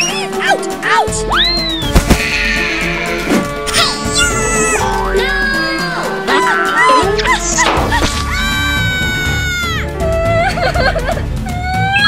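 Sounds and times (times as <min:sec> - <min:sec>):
high-pitched cartoon wail: 0:03.7 - 0:05.7
background music with steady beat: 0:08.6 - 0:12.0.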